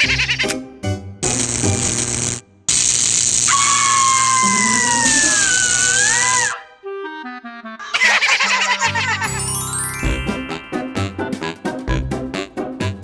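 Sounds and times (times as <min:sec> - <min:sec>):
crackling electrical buzz: 0:01.2 - 0:04.0.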